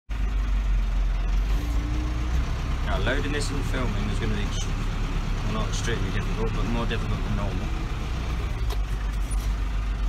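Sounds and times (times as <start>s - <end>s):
tractor diesel engine running: 0.1s - 10.0s.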